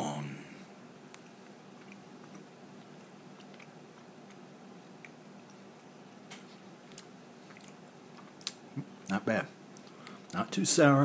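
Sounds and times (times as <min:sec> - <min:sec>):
low steady hum: 0:00.0 - 0:11.0
mouth clicks chewing: 0:01.1 - 0:05.9, 0:06.8 - 0:08.6.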